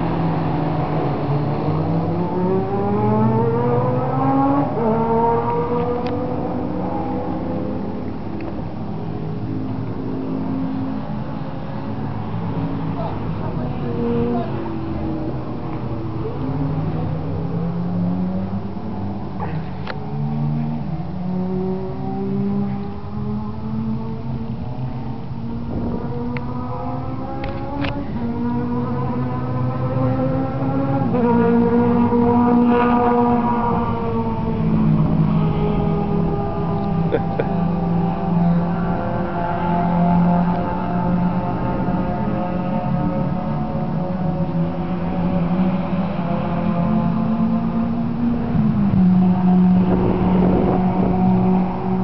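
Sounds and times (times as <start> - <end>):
engine running: 0.0 - 52.0.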